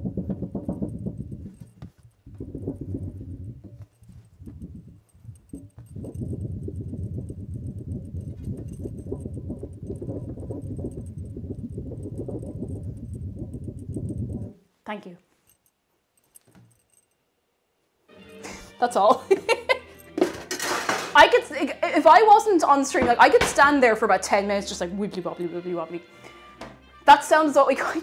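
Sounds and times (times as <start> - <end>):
wobble board wub-wub: 0.0 - 14.6.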